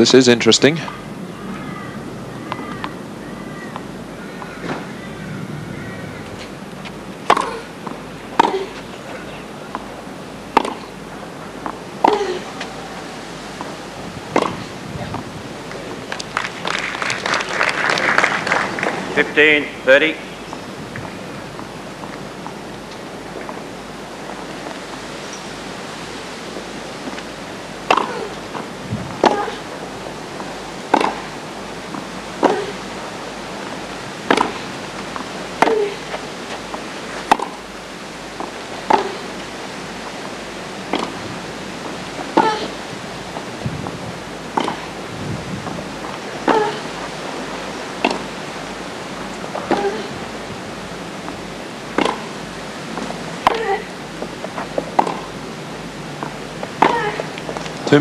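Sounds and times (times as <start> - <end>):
steady hiss: 0.0 - 58.0
tennis racket strikes: 7.2 - 7.6, 10.5 - 11.0, 14.3 - 14.6, 27.8 - 28.3, 29.2 - 29.6, 30.9 - 31.4, 32.4 - 32.8, 34.2 - 34.7, 37.2 - 37.6, 38.9 - 39.3, 40.9 - 41.2, 44.5 - 45.0, 51.9 - 52.4, 54.9 - 55.4.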